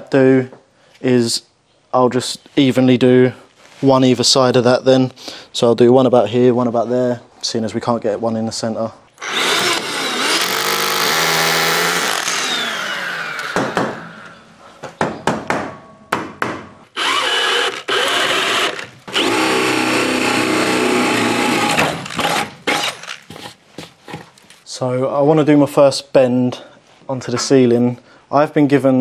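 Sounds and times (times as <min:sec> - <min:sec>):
cordless drill boring through wood: 0:09.2 - 0:13.8, 0:17.0 - 0:23.2
knocks: 0:13.6 - 0:14.0, 0:14.8 - 0:16.8.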